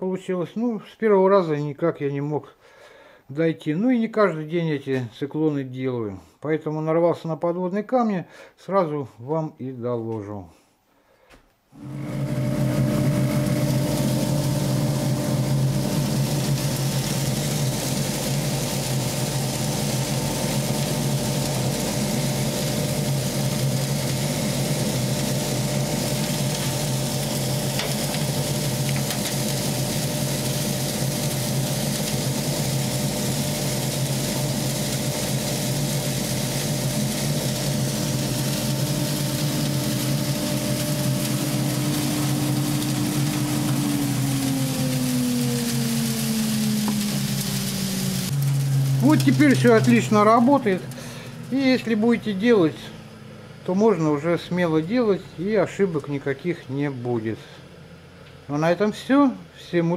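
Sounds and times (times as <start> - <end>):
motor hum: 11.8 - 55.5.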